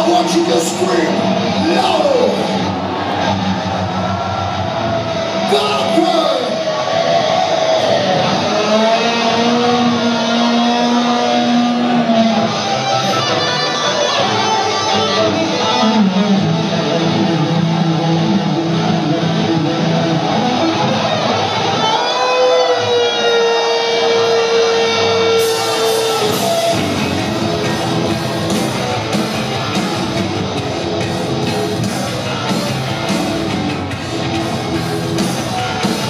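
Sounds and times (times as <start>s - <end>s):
electric guitar bending notes: 0.0s - 36.0s
live heavy metal band: 0.0s - 36.0s.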